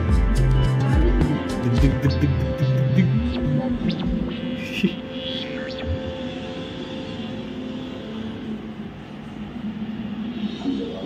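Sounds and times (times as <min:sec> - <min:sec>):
steady low hum: 0:01.8 - 0:11.0.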